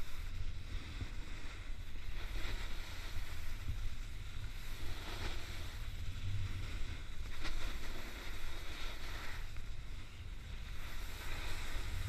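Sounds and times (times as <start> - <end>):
snowboards sliding on snow: 0.0 - 12.0.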